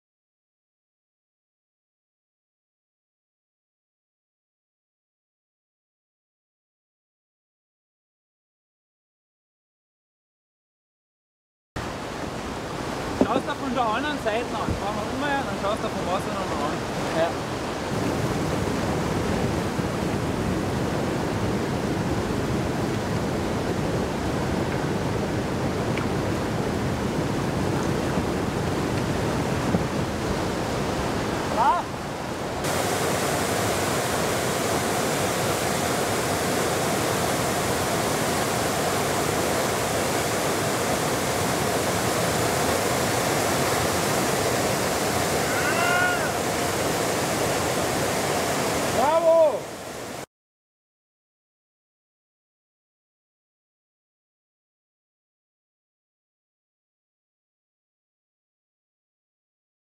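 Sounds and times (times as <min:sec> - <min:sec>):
whitewater rapids rushing: 0:11.8 - 0:50.3.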